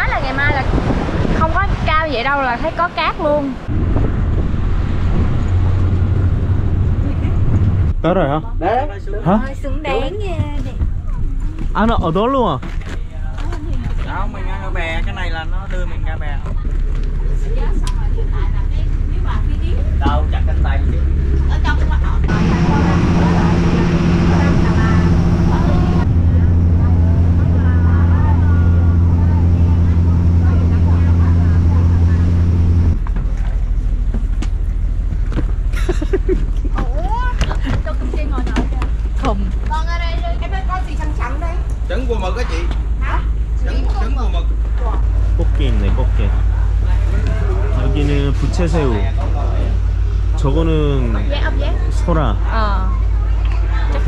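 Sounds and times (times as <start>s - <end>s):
boat engine droning: 0.0s - 54.0s
vehicle driving low rumble: 0.0s - 54.0s
faint voices: 16.4s - 33.0s.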